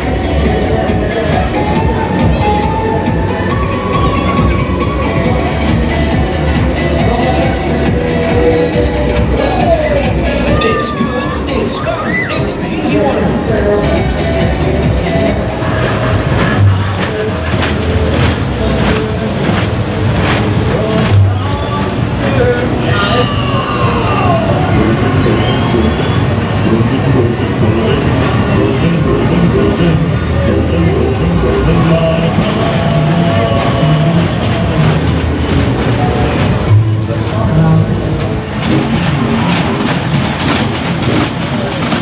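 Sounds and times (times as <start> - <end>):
loud ride music with beat: 0.0 - 42.0
small train ride on track: 0.0 - 42.0
train wheels clicking on rails: 15.7 - 22.2, 32.3 - 42.0.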